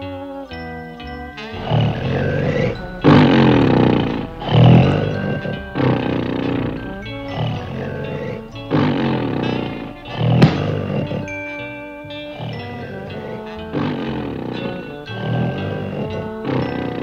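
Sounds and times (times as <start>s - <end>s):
music: 0.0s - 17.0s
cartoon snoring: 1.6s - 11.4s, 12.3s - 17.0s.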